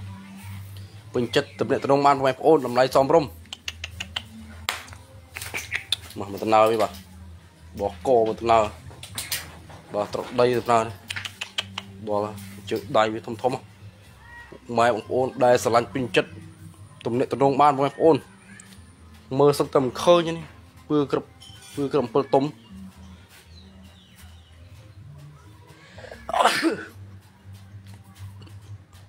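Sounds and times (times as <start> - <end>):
sharp clicks: 11.0 - 12.0
loud sneeze: 26.2 - 27.0.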